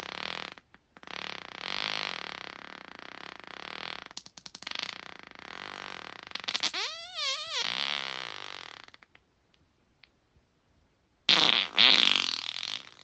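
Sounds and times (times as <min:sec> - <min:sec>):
person farting: 0:00.0 - 0:09.1, 0:11.3 - 0:13.0.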